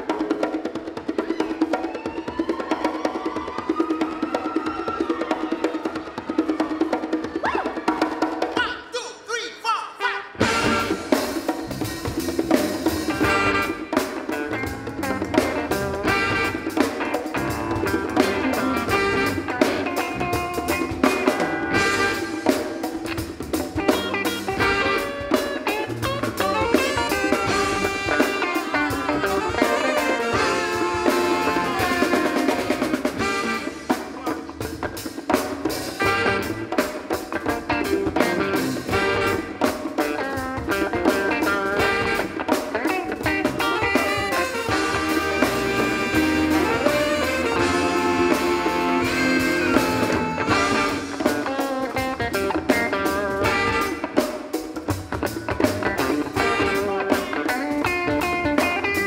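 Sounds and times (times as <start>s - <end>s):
conga drums: 0.0s - 59.0s
drum kit: 0.0s - 59.0s
horns: 9.6s - 11.6s, 12.8s - 23.2s, 23.8s - 34.5s, 35.8s - 37.2s, 37.8s - 40.2s, 41.4s - 54.6s, 56.0s - 58.7s
electric guitar: 10.3s - 59.0s.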